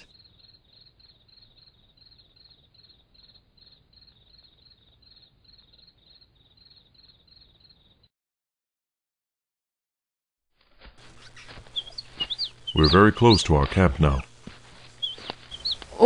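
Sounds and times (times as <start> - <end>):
crickets chirping: 0.0 - 8.1.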